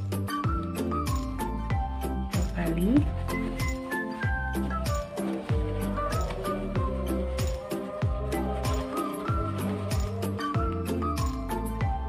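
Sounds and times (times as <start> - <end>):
background music with beat: 0.0 - 12.0.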